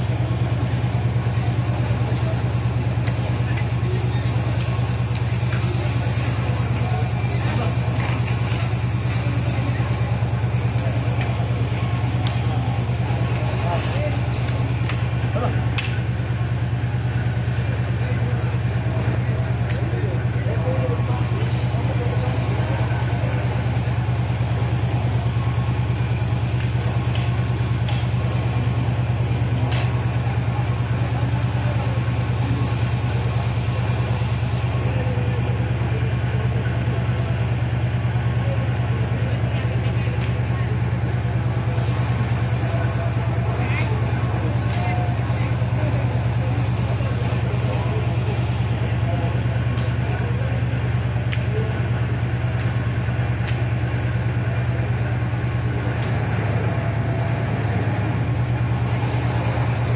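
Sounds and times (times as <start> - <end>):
faint clicks: 52.5 - 52.8.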